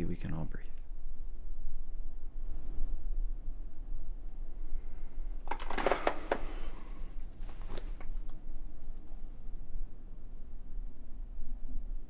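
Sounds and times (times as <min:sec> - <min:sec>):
fabric rustling: 0:05.5 - 0:08.2.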